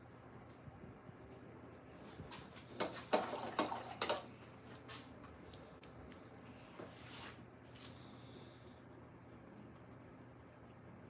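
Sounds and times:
paintbrush scrubbing strokes: 0:06.9 - 0:08.4.

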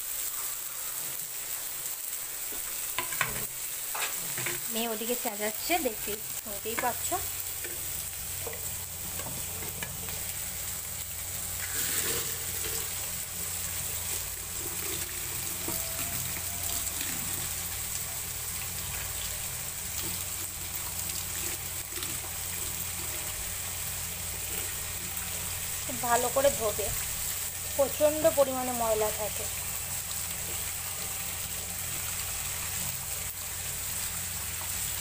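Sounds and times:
tap water running into colander: 0:02.5 - 0:35.0
hand stirring rice flakes: 0:11.6 - 0:17.5.

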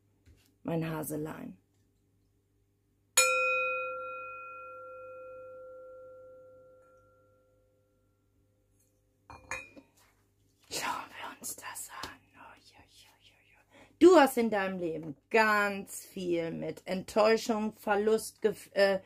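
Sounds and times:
metal singing bowl ringing: 0:03.2 - 0:08.3.

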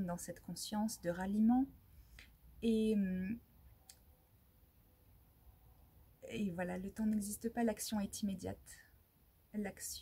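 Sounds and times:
woman speaking: 0:00.0 - 0:01.8, 0:02.6 - 0:03.4, 0:06.2 - 0:10.0.

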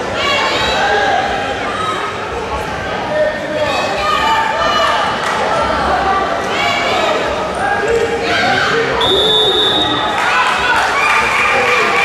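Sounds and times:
voices shouting in echoing hall: 0:00.0 - 0:12.0.

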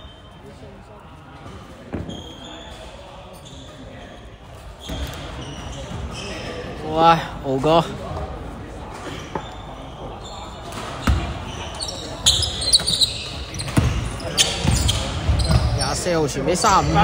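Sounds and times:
shoes squeaking on floor: 0:01.5 - 0:06.8, 0:09.0 - 0:17.0
basketball bouncing on wooden court: 0:11.0 - 0:11.3, 0:13.6 - 0:15.8.

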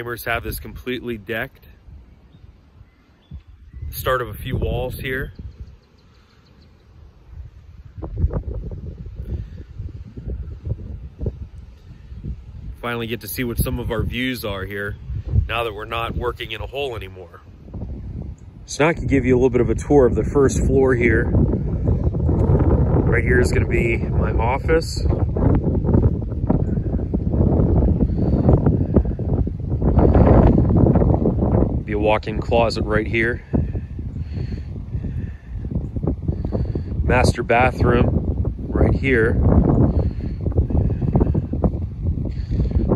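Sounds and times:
wind buffeting microphone: 0:00.0 - 0:42.9.

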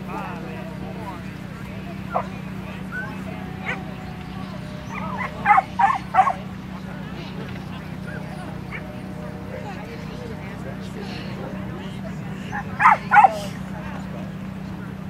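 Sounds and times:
dog barking: 0:02.1 - 0:02.3, 0:02.9 - 0:03.9, 0:04.8 - 0:06.4, 0:12.5 - 0:13.4.

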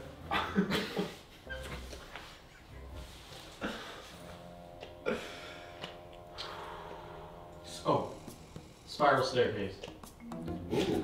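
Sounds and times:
person laughing muffled: 0:00.2 - 0:01.3.

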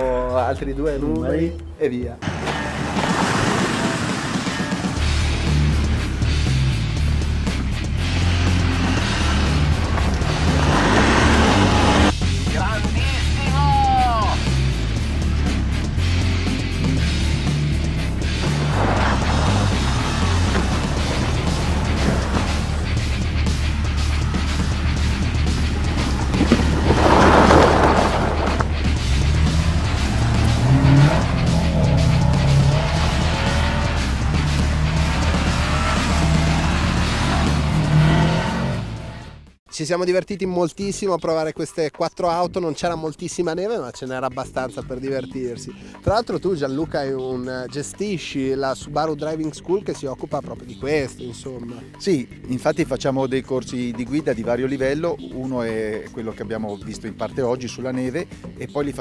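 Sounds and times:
snow spray noise: 0:02.2 - 0:05.2, 0:25.9 - 0:28.7
car engines revving: 0:02.2 - 0:13.5, 0:14.4 - 0:39.6
background music with bass line: 0:04.4 - 0:40.0, 0:42.2 - 0:59.0.

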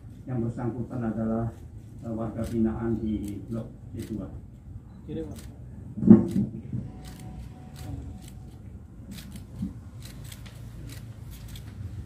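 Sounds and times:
camera shutter clicks: 0:06.2 - 0:11.7.

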